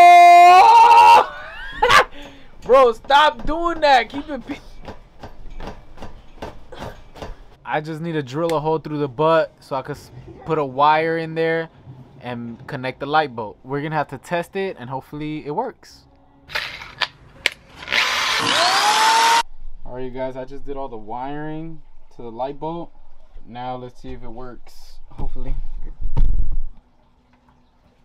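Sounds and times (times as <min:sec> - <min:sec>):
electric drill whining: 0:17.7 - 0:19.4.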